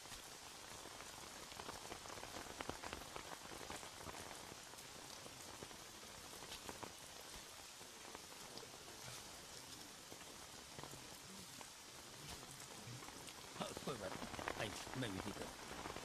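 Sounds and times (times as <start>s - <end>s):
steady rain falling: 0.0s - 16.0s.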